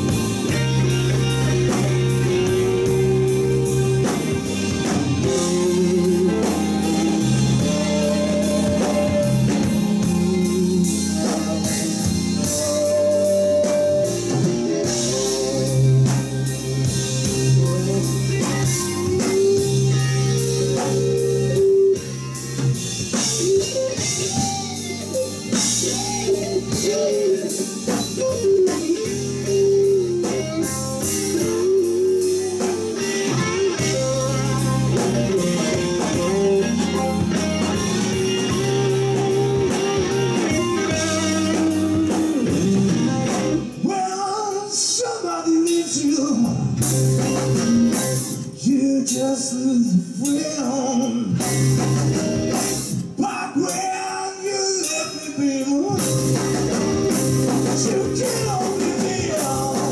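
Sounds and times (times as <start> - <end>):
man singing: 0.0 - 22.2, 25.5 - 47.3, 48.3 - 59.9
live blues band playing: 0.0 - 59.9.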